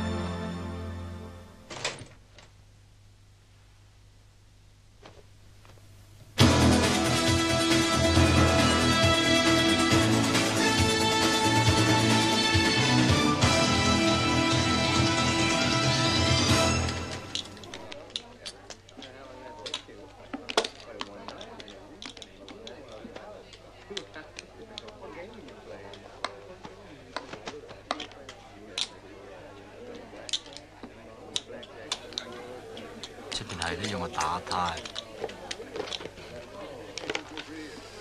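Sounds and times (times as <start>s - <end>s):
soundtrack music: 0.0s - 1.6s, 6.4s - 17.7s
murmur of voices: 16.1s - 38.0s.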